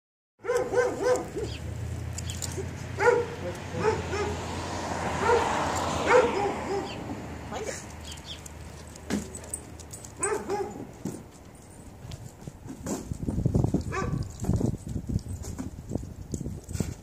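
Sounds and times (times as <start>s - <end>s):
dog yipping and whining: 0.4s - 1.6s, 10.2s - 10.9s, 13.9s - 14.4s.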